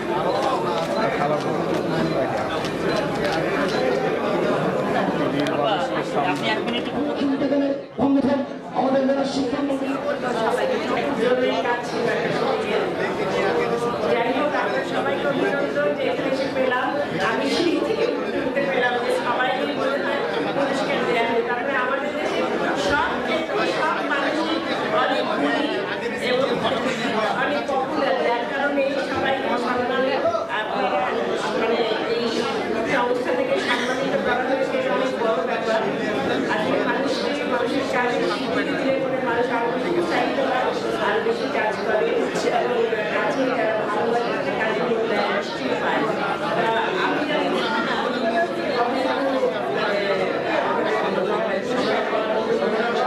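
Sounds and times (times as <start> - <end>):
overlapping chatter: 0.0 - 53.0.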